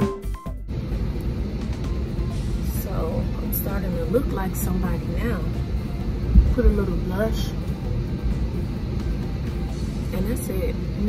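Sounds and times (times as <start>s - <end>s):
cabin ventilation rumble: 0.1s - 11.0s.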